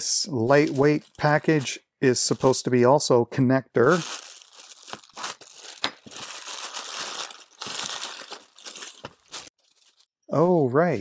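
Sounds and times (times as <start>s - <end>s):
plastic bag crinkling: 0.5s - 1.8s, 3.8s - 10.1s
knife slitting plastic bag: 3.9s - 10.0s.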